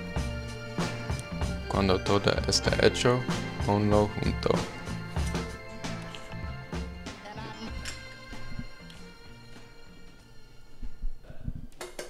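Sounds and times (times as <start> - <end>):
background music: 0.0 - 12.0.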